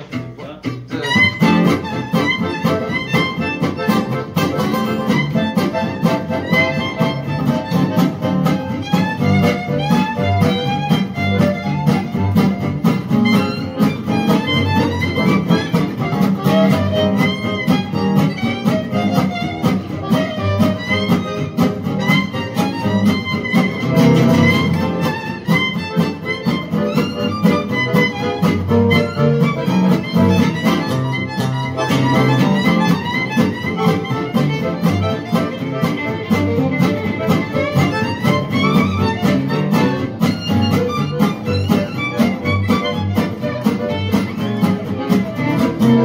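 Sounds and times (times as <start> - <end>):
double bass: 0.0 - 46.0
strummed acoustic guitar: 0.0 - 46.0
accordion: 0.9 - 46.0
violin melody: 0.9 - 46.0.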